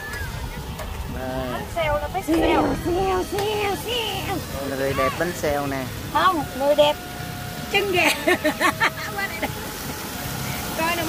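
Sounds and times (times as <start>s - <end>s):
chicken sizzling on grill: 0.0s - 11.0s.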